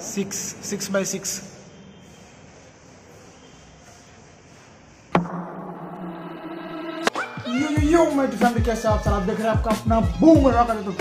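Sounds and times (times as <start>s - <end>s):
faint room noise: 0.0s - 5.1s
loud impact hit: 5.2s - 7.4s
intro music chord: 5.2s - 8.2s.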